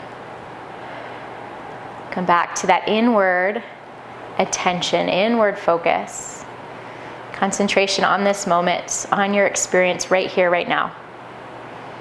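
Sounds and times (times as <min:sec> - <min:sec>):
room hiss and hum: 0:00.0 - 0:12.0.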